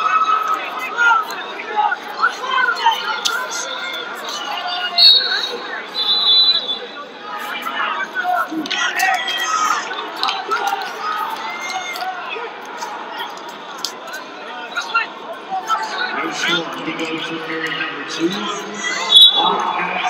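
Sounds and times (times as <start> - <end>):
crowd noise echoing: 0.0 - 20.0.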